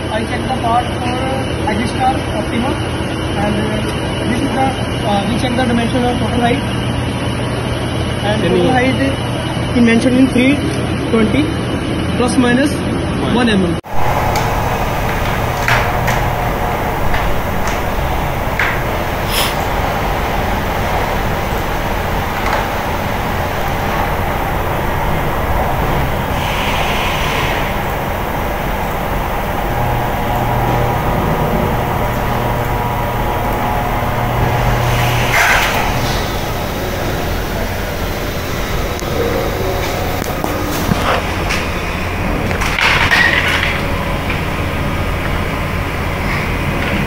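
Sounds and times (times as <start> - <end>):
factory machinery hum and rush: 13.8 - 47.0
low tone: 13.9 - 44.9
short hiss: 19.2 - 19.7.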